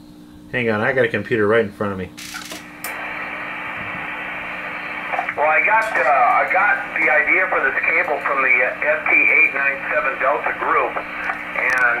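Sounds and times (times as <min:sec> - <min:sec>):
faint steady hum: 0:00.0 - 0:12.0
man speaking over radio: 0:05.0 - 0:12.0.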